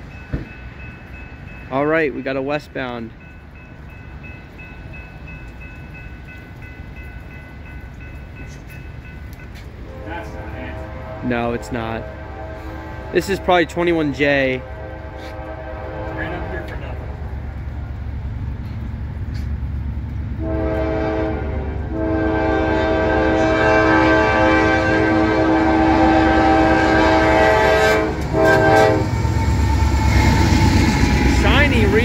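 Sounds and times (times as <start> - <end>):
low rumble of train: 0.0 - 32.0
locomotive air horn blasts: 9.8 - 13.7, 14.6 - 16.8, 20.4 - 29.2.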